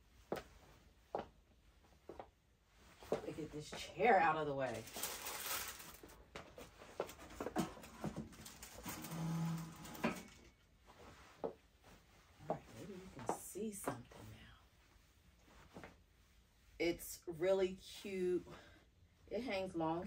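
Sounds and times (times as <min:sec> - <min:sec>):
clothes and packaging rustling: 0:00.2 - 0:16.8.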